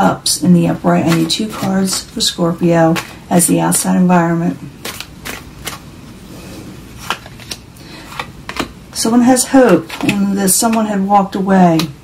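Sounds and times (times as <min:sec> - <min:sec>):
cards snapping and tapping: 0:04.8 - 0:05.8, 0:07.0 - 0:08.8.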